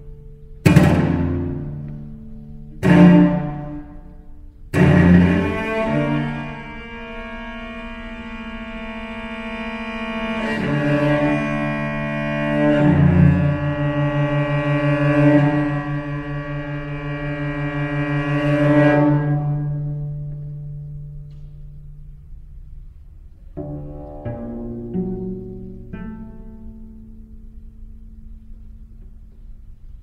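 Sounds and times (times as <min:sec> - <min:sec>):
cello bowed notes with vibrato: 0:00.0 - 0:30.0
plucked cello notes: 0:00.0 - 0:30.0.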